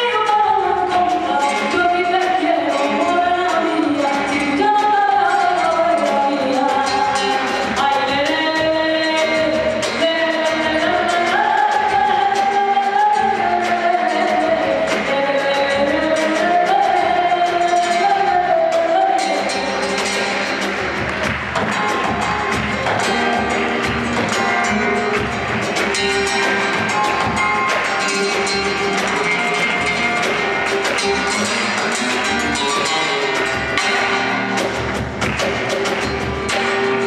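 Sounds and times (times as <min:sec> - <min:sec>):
person singing: 0:00.0 - 0:20.7
live band playing: 0:00.0 - 0:37.0.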